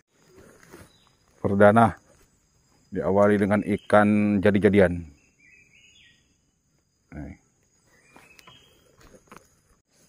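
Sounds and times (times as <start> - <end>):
quiet forest background: 0.0 - 10.0.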